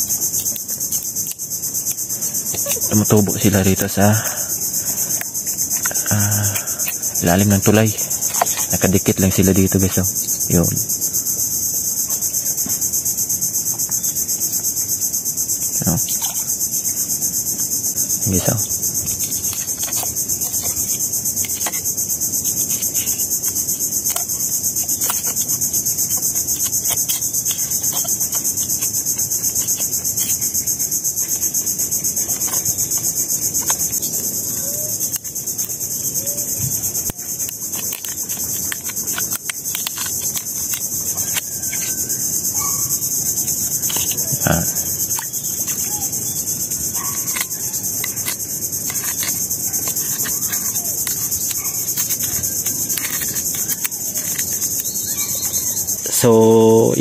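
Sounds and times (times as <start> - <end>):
high-pitched insect chorus: 0.0 - 57.0.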